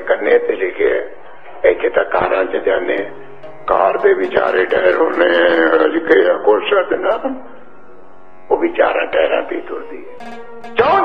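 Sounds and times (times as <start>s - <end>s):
man chanting held notes: 0.0s - 7.5s.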